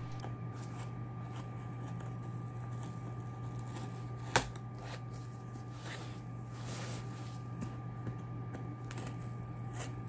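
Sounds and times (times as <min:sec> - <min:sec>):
knife cutting packing tape: 0:00.0 - 0:05.0
steady low hum: 0:00.0 - 0:10.0.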